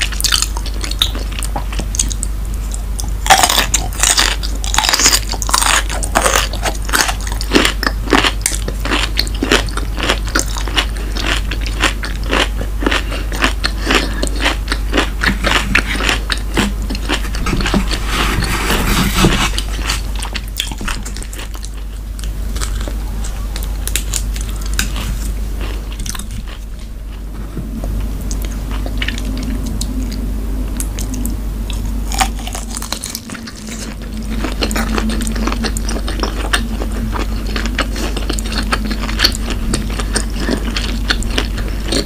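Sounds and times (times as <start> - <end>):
chewing with mouth clicks: 0.0 - 18.1, 19.6 - 30.2, 30.8 - 42.0.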